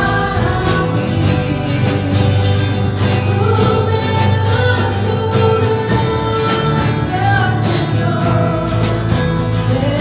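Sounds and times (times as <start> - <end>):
live band playing: 0.0 - 10.0
woman singing: 0.0 - 10.0.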